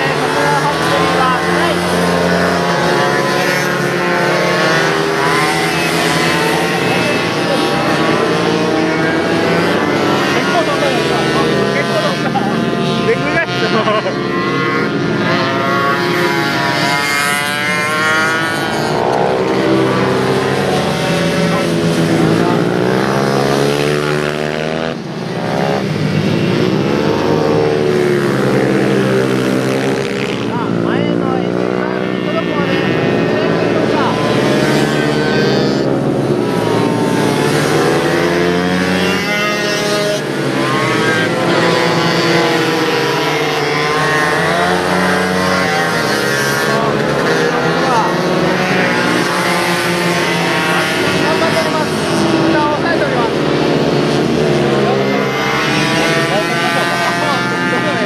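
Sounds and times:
minibike engines revving: 0.0 - 58.0.

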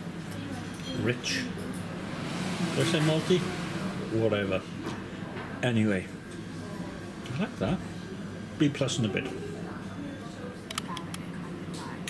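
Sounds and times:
indistinct voices in a pub: 0.0 - 12.0.

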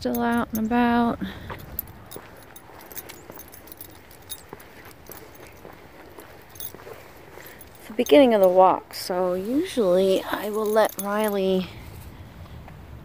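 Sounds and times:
small metal pieces jingling: 0.0 - 8.6, 9.6 - 11.7
soft footsteps: 0.0 - 12.1.

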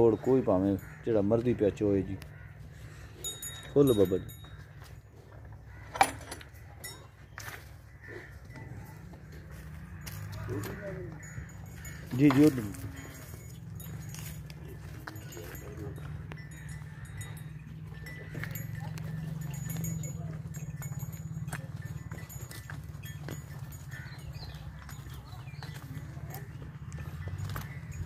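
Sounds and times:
cattle hoof steps on dirt: 4.4 - 28.0.

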